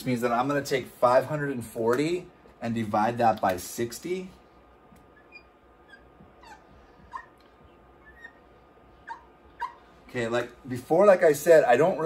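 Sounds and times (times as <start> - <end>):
marker squeaking on whiteboard: 5.0 - 10.0.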